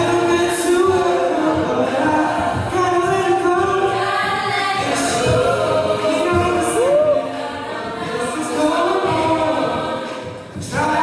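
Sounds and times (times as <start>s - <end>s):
man singing lead on microphone: 0.0s - 4.1s, 4.8s - 7.4s, 8.0s - 11.0s
a cappella group singing: 0.0s - 11.0s.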